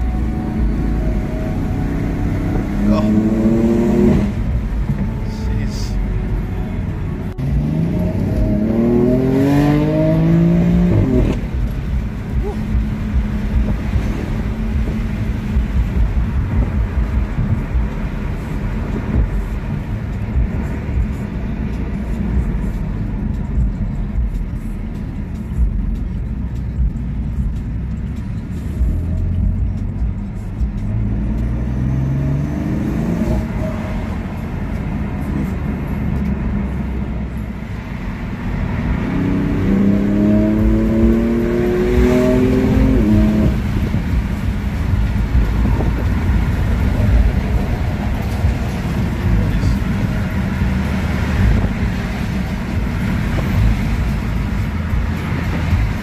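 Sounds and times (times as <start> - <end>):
car engine accelerating: 0.0 - 56.0
road rumble: 0.0 - 56.0.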